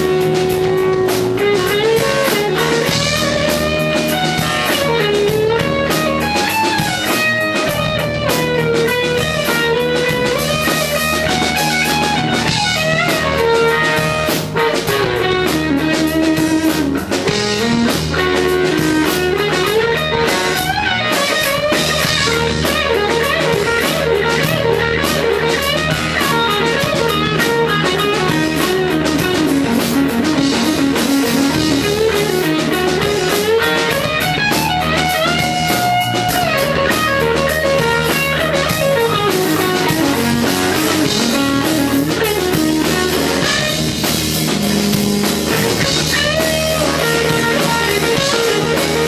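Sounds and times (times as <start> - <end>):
drum beat: 0.0 - 49.0
electric guitar rock lead: 0.0 - 49.0.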